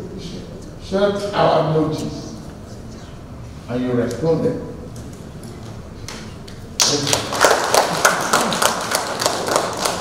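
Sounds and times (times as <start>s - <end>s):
small group clapping: 5.5s - 10.0s.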